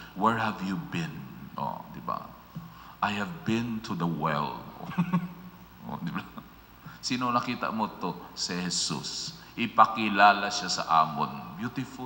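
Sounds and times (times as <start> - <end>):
man laughing: 4.8 - 5.4.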